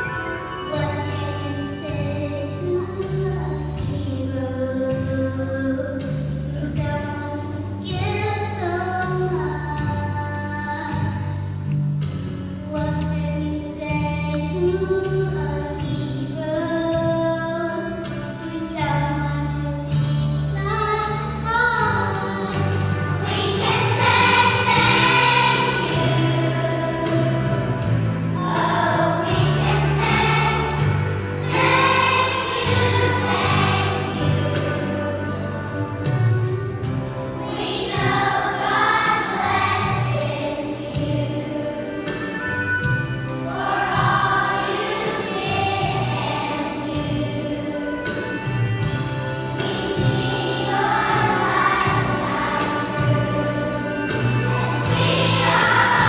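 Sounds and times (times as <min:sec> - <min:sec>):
children's choir singing: 0:00.0 - 0:11.4, 0:13.6 - 0:56.0
musical accompaniment: 0:00.0 - 0:56.0.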